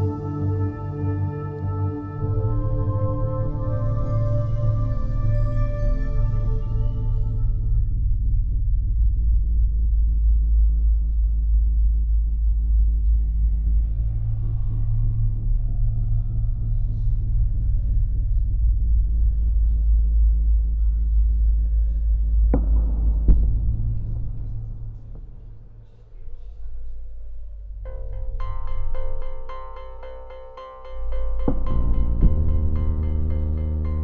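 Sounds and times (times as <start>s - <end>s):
deep rumble: 0.0s - 34.0s
faint music: 0.0s - 34.0s.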